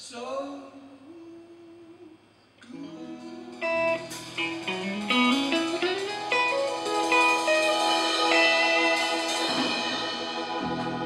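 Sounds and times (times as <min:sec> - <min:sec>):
electric guitar playing blues: 0:02.8 - 0:11.0.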